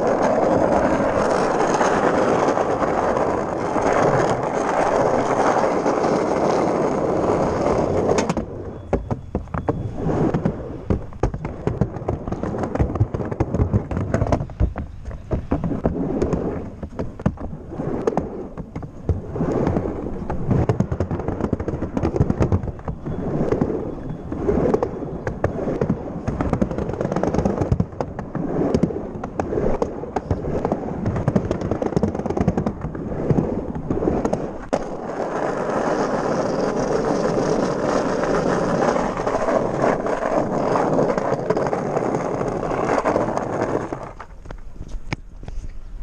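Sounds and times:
small wheels rolling on paving: 0.0 - 46.0.

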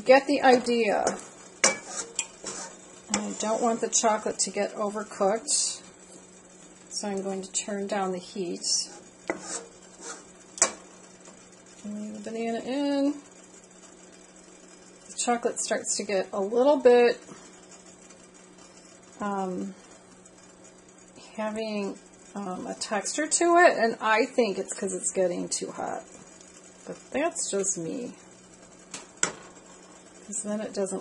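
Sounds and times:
steady low hum: 0.0 - 31.0
spatula scraping a steel bowl: 1.6 - 4.3, 8.8 - 10.3
person speaking: 3.1 - 5.8.

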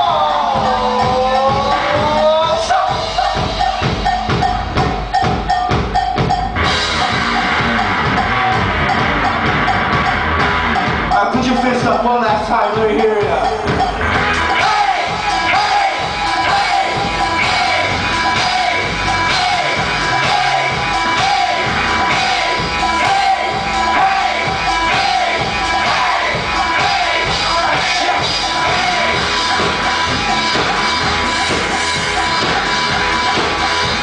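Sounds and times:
shouted singing: 0.0 - 4.0, 14.4 - 34.0
live rock band playing loudly: 0.0 - 34.0
electric guitar: 6.6 - 11.2
crowd voices: 6.6 - 34.0.

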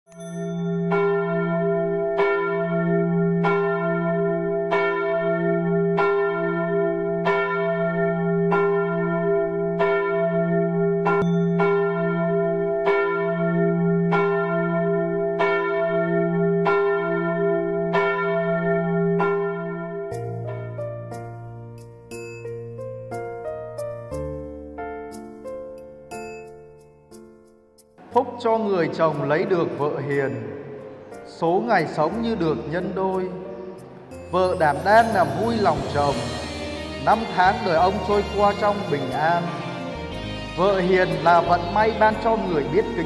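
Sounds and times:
church bell tolling: 0.2 - 23.1, 28.0 - 43.0.

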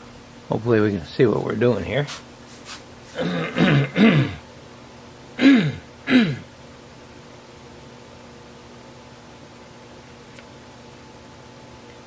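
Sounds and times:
faint room hum: 0.0 - 12.0
man coughing: 3.1 - 4.4, 5.4 - 6.5.

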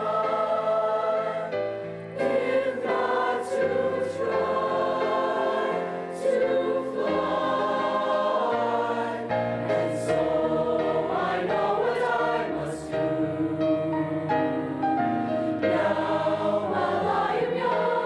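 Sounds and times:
choir singing chords: 0.0 - 18.0.

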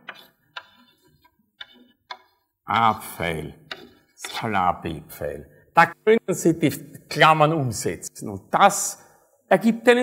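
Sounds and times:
chalk tapping on blackboard: 0.0 - 2.5, 3.6 - 4.6.

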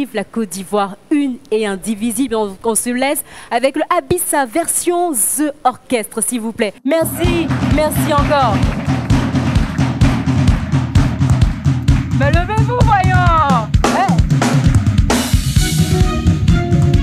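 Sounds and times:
live band music: 7.0 - 17.0.

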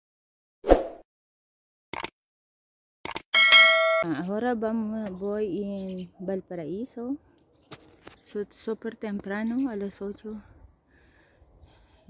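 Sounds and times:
notification bell ding: 3.4 - 4.1.

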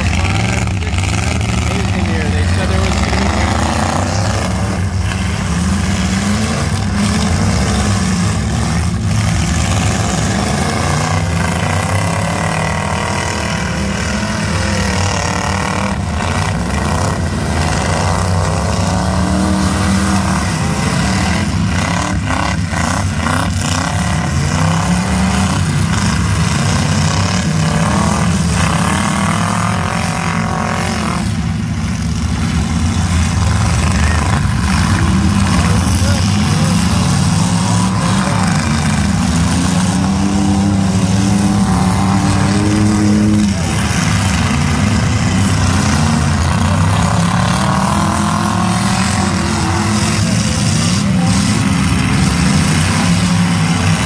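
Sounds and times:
truck engines revving: 0.0 - 54.0.

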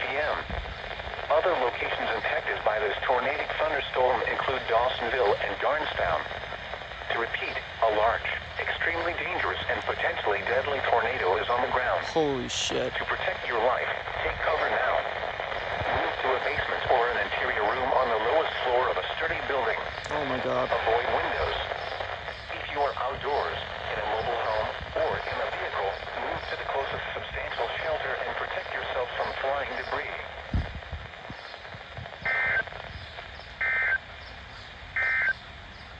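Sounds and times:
warbling data bursts from radio speaker: 0.0 - 34.3, 34.9 - 35.4
synthesized voice through small speaker: 7.1 - 15.1, 15.8 - 21.7.

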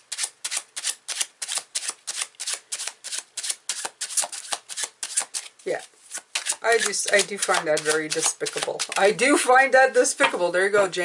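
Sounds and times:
cards being shuffled: 0.1 - 9.2.

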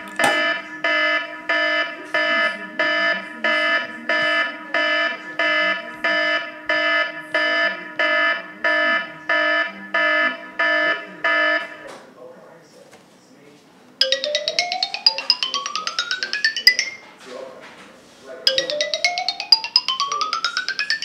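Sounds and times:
electronic alarm buzzy beeps: 0.0 - 11.8, 14.0 - 17.0, 18.5 - 21.0.

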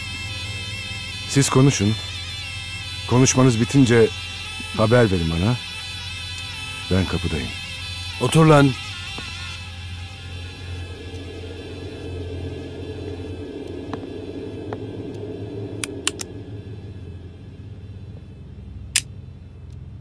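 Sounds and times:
low rumbling film score drone: 0.0 - 20.0
sharp clicks: 15.8 - 16.3, 18.9 - 19.1.

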